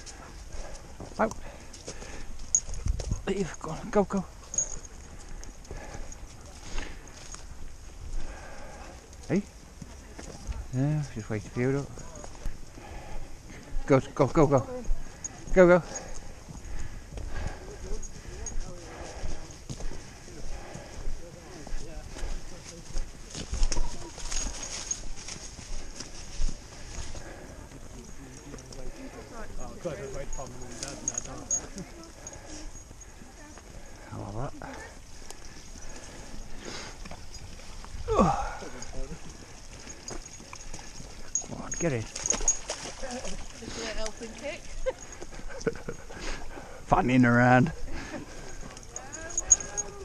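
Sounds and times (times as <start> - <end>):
footsteps on dirt path: 0.0 - 50.0
people talking quietly: 0.0 - 50.0.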